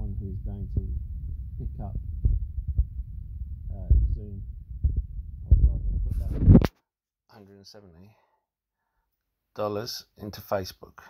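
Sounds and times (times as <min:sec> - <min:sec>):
muffled voice: 0:00.0 - 0:00.9, 0:05.5 - 0:06.4
soft low thumps: 0:00.0 - 0:06.7
steady low rumble: 0:00.0 - 0:06.7.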